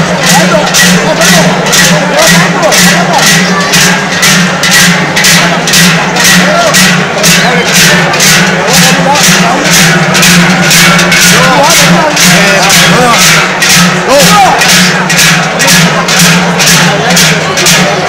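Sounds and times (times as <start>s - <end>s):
crowd talking: 0.0s - 18.0s
large cowbells clanging: 0.0s - 18.0s.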